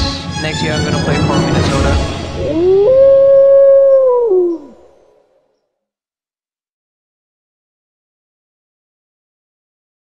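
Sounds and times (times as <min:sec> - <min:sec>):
wolf howling: 0:02.3 - 0:05.4.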